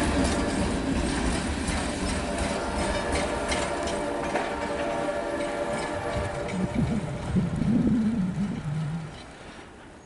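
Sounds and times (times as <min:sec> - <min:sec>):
freight train rumbling: 0:00.0 - 0:10.0.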